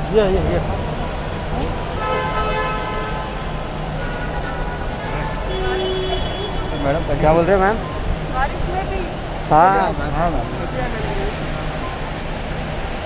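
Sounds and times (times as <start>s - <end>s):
busy forecourt noise: 0.0s - 13.0s
vehicle horn: 1.9s - 7.2s.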